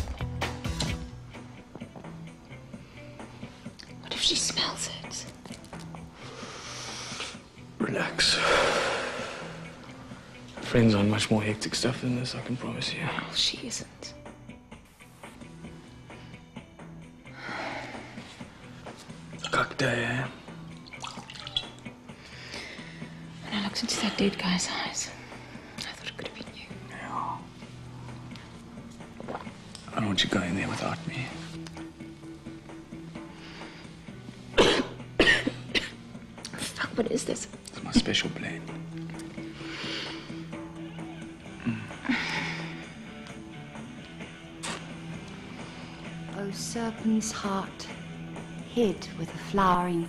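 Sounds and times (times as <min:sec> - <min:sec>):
breathy puffing: 0:06.2 - 0:07.4, 0:08.4 - 0:09.8, 0:39.3 - 0:40.6, 0:41.5 - 0:43.3.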